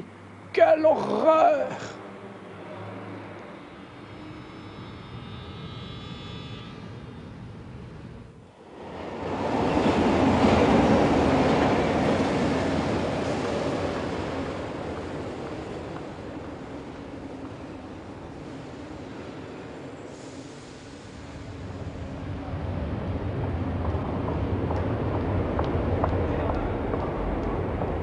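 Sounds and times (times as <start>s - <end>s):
metro train rumbling: 7.1s - 28.0s.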